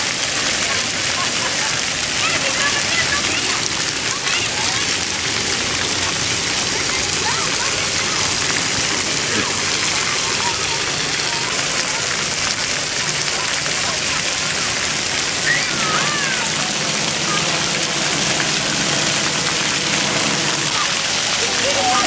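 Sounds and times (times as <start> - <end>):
children's voices: 0.0 - 22.0
water jets spraying: 0.0 - 22.0.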